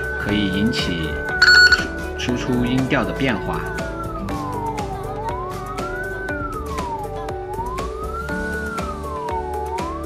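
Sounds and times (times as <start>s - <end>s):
heterodyne whistle sliding in pitch: 1.3s - 2.1s, 4.0s - 10.0s.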